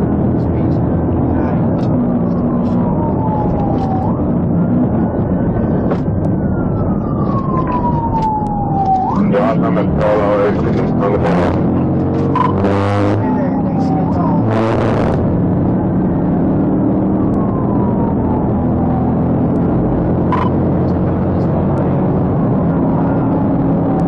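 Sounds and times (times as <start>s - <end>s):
engine and road drone: 0.0s - 24.0s
brief beep: 12.3s - 12.6s, 20.3s - 20.6s.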